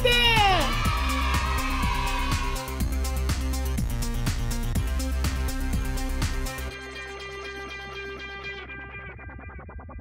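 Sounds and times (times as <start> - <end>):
guitar music: 5.6 - 9.5.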